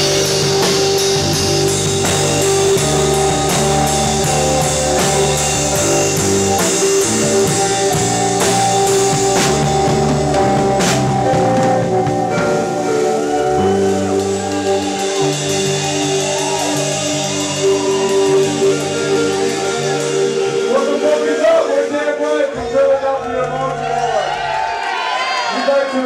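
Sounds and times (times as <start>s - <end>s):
live rock band playing: 0.0s - 25.5s.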